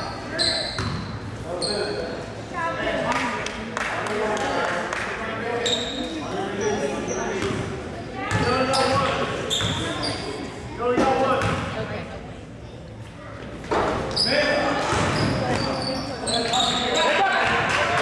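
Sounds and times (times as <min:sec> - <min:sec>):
short high squeaks: 0:09.5 - 0:10.4.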